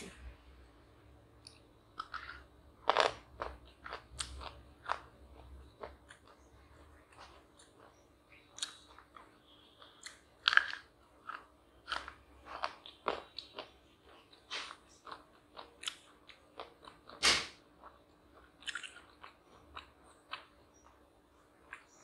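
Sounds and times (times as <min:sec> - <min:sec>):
chewing crunchy chocolate: 0:01.4 - 0:22.0.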